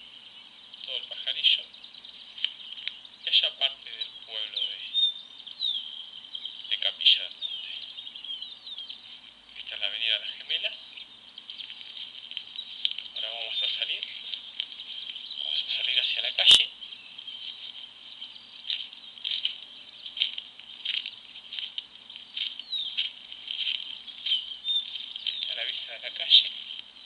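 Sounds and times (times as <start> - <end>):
bird chirps: 0.0 - 27.0
steady hiss: 0.0 - 27.0
footsteps crunching on dirt: 0.8 - 27.0.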